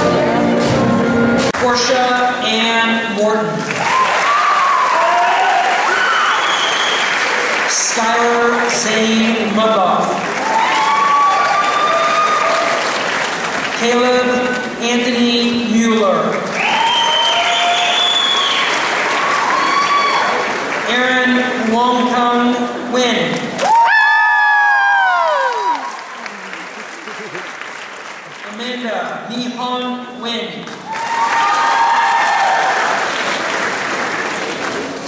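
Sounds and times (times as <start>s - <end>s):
audience applauding: 3.6s - 14.8s, 16.3s - 21.6s, 23.5s - 29.1s, 30.7s - 35.0s
person cheering: 3.8s - 6.4s, 23.6s - 27.5s
drawn-out cheers: 3.8s - 7.2s, 10.4s - 13.0s, 16.6s - 20.5s, 23.6s - 26.2s, 30.9s - 33.1s.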